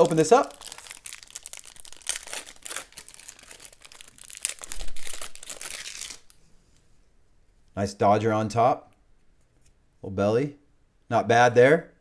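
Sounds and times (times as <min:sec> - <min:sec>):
wrapper being torn and crinkled: 0:00.0 - 0:06.4.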